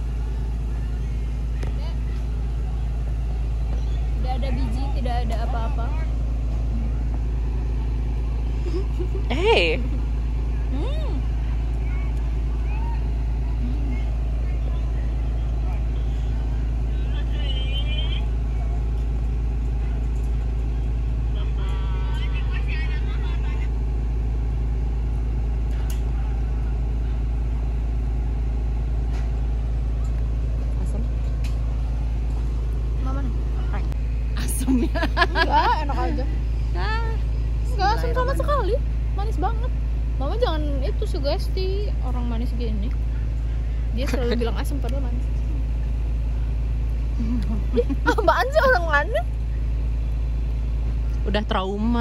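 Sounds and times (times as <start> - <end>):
distant road traffic rumble: 0.0 - 52.0.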